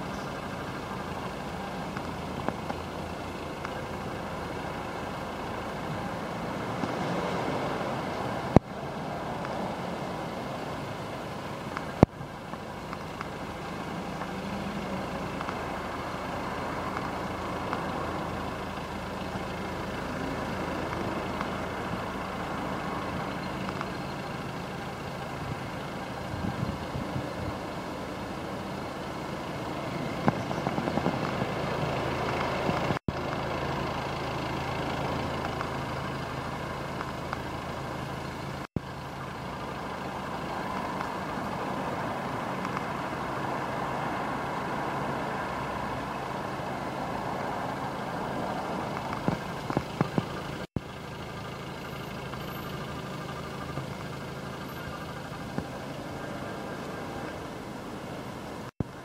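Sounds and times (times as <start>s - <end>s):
engine knocks: 0.0s - 56.2s
diesel engine idling: 0.0s - 59.0s.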